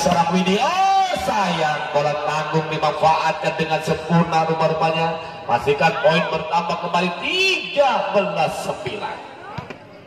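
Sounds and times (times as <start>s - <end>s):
man commentating: 0.0s - 9.2s.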